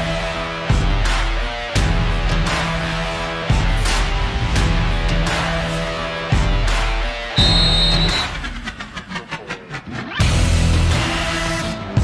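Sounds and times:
heavy metal music: 0.0 - 12.0.

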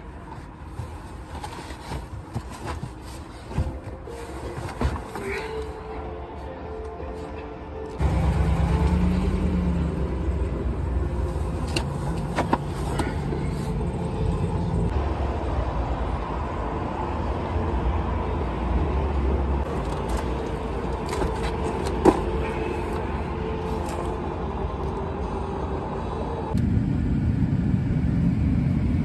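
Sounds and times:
cars going by: 8.0 - 29.0.

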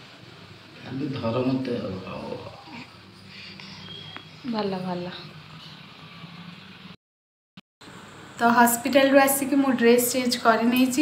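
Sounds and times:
soft infant vocal sound: 2.4 - 4.4.

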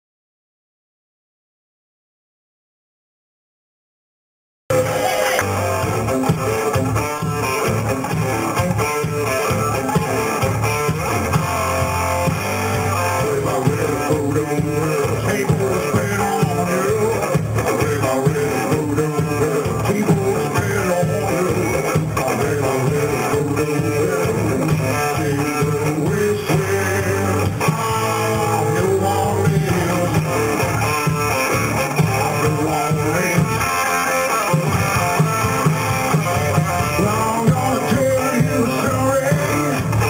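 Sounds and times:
drums: 4.7 - 40.0
electric bass: 4.7 - 40.0
electric guitar: 4.7 - 40.0.

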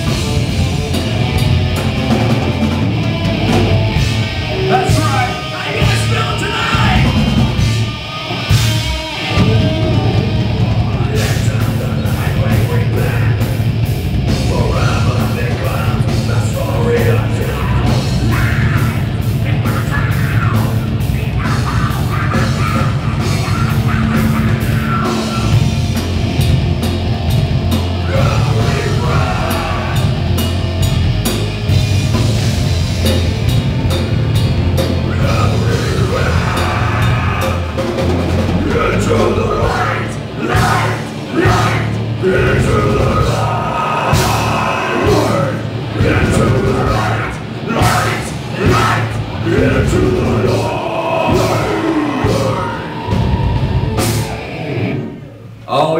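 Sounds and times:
drum kit: 0.0 - 55.4
live heavy metal band: 0.0 - 55.6
electric guitars: 0.0 - 55.7
vocalist shouting into microphone: 4.6 - 7.2, 38.6 - 53.4.

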